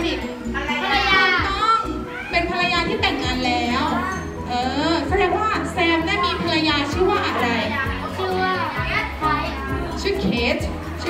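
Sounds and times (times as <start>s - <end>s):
background music with low bass: 0.0s - 11.0s
children talking: 0.0s - 11.0s.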